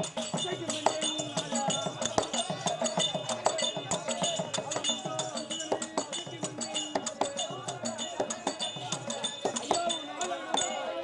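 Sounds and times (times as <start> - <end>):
hand cymbals clinking: 0.0 - 11.0.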